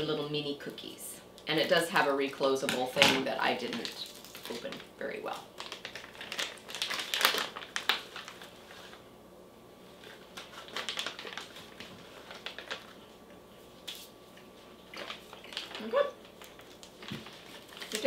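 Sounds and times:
plastic snack pouch crinkling: 0:03.6 - 0:09.0, 0:10.0 - 0:13.1, 0:14.8 - 0:18.0.

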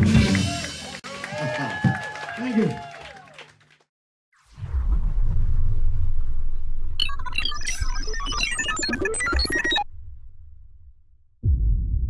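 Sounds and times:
deep synth rumble: 0:04.5 - 0:08.0, 0:09.7 - 0:12.0.

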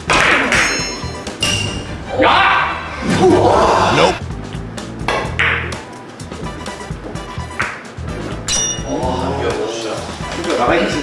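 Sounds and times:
billiard balls knocking: 0:05.0 - 0:05.8
cue striking billiard ball: 0:05.0 - 0:05.8.

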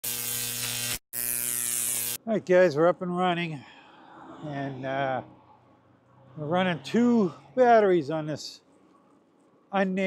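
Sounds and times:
harsh electric buzz: 0:00.0 - 0:02.3.

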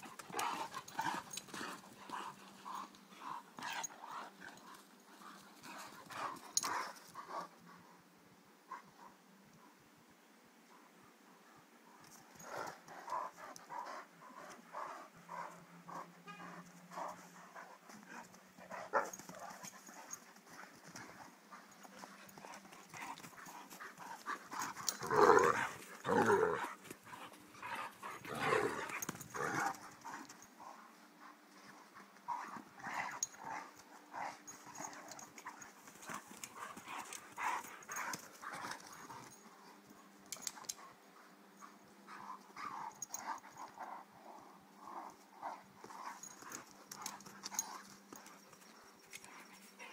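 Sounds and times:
dogs panting: 0:00.0 - 0:08.1, 0:11.5 - 0:49.9.

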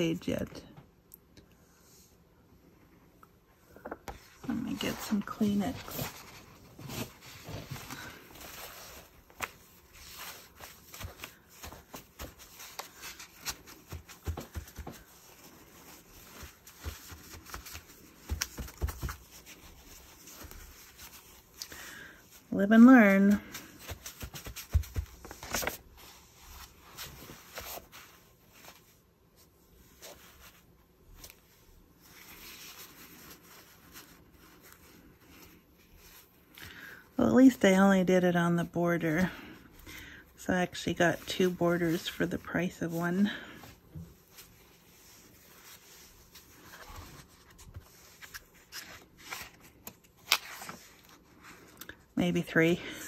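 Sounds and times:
paper tissue rustling and crinkling: 0:04.1 - 0:53.0
page turning: 0:04.8 - 0:21.7, 0:23.2 - 0:28.8, 0:45.0 - 0:51.7.

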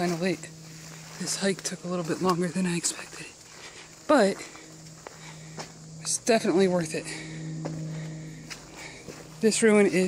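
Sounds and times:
footsteps on forest floor: 0:00.0 - 0:10.0
low hum: 0:00.0 - 0:10.0.

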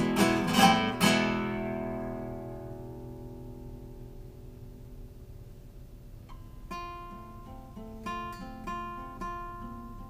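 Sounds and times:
classical guitar chord ringing: 0:00.0 - 0:10.0.

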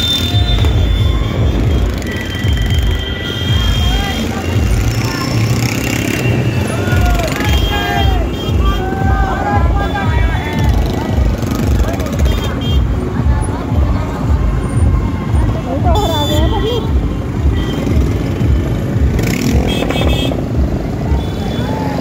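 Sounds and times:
music from a loudspeaker: 0:00.0 - 0:04.9, 0:06.9 - 0:17.6
motorcycles rumbling at low speed: 0:00.0 - 0:22.0
people calling out: 0:06.5 - 0:12.4.

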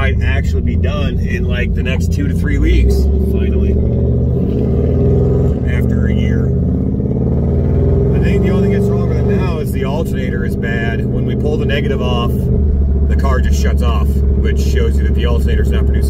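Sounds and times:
man talking: 0:00.0 - 0:03.9, 0:05.6 - 0:06.5, 0:08.2 - 0:12.4, 0:13.1 - 0:16.0
car engine drone: 0:00.0 - 0:16.0
road noise: 0:00.0 - 0:16.0.

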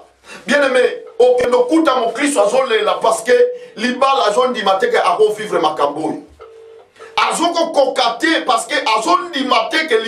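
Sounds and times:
person talking: 0:00.0 - 0:06.3, 0:07.1 - 0:10.0
low telephone tone: 0:06.4 - 0:07.4.

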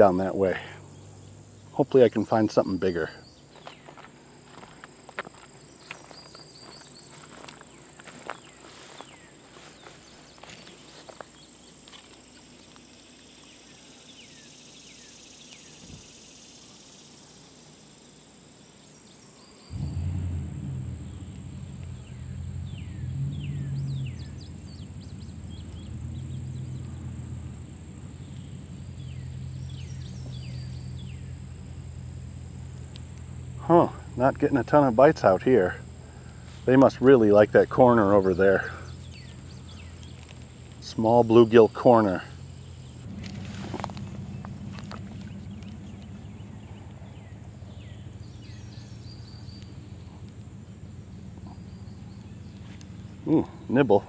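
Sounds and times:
low steady hum: 0:00.0 - 0:53.8
insects chirring: 0:00.0 - 0:54.0
footsteps through grass: 0:03.5 - 0:12.3, 0:43.1 - 0:47.0.

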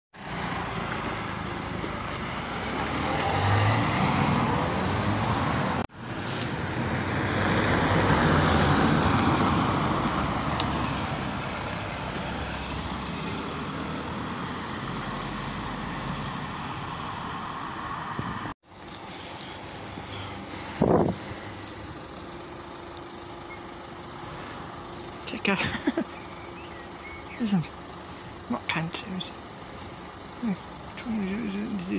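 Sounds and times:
passing vehicles rushing: 0:00.2 - 0:31.9.

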